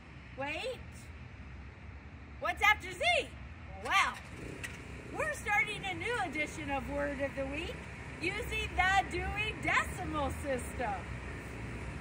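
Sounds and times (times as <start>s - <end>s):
street traffic rumble: 0.0s - 12.0s
woman speaking: 0.4s - 1.1s, 2.4s - 4.2s, 5.1s - 11.1s.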